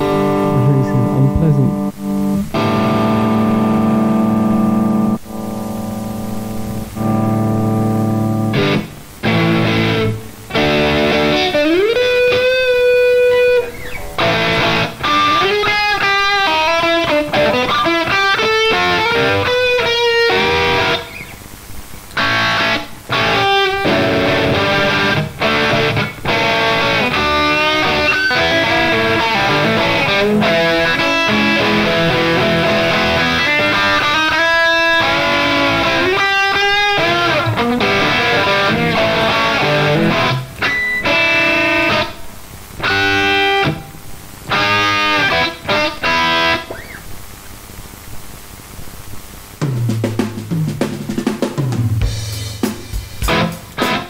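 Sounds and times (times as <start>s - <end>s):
electric guitar blues-rock lead: 0.0s - 47.5s, 51.4s - 54.0s.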